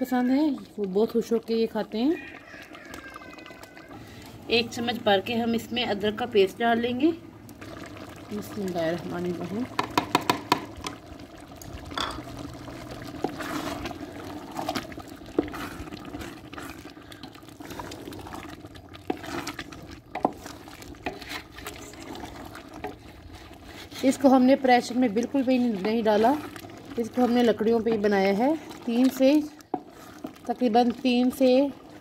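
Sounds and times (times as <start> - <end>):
liquid bubbling: 0.0 - 32.0
spatula scraping and knocking pot: 9.7 - 11.0, 19.0 - 31.4.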